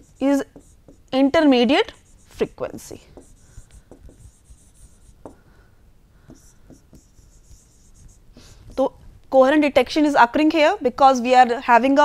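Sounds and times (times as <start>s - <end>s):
stylus scratching on tablet: 0.0s - 5.4s, 6.2s - 8.9s.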